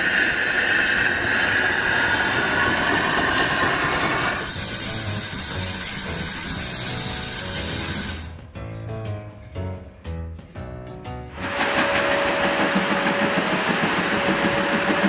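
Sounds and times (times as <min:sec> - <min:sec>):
steam hissing: 0:00.0 - 0:08.4, 0:11.4 - 0:15.0
steam locomotive whistle: 0:00.0 - 0:08.4, 0:11.4 - 0:15.0.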